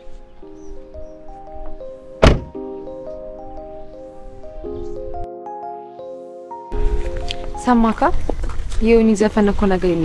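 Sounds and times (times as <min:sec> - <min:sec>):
background music with held notes: 0:00.0 - 0:08.7
car door slamming: 0:02.2 - 0:02.6.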